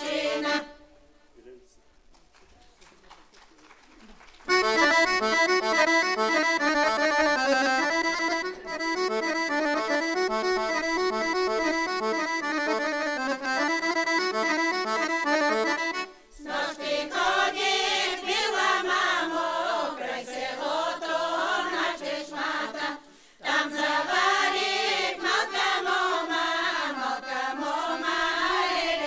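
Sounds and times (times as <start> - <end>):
accordion playing folk melody: 0.0 - 1.0, 4.5 - 17.6, 20.9 - 29.0.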